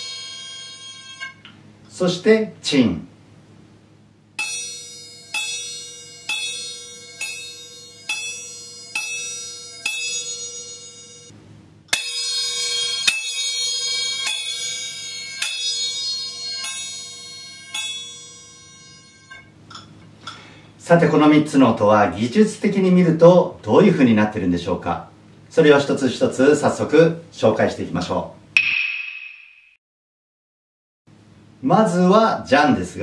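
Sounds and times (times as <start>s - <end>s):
small hand cymbals ringing: 0.0s - 1.5s, 4.4s - 20.0s.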